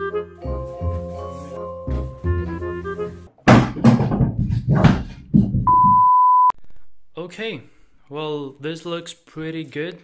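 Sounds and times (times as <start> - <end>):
high test-card beep: 5.7 - 6.5.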